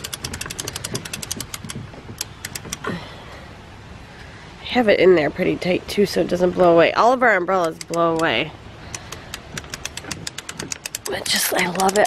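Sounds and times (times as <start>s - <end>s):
umbrella crank ratchet clicking: 0.0s - 2.8s, 7.6s - 8.3s, 8.9s - 12.0s.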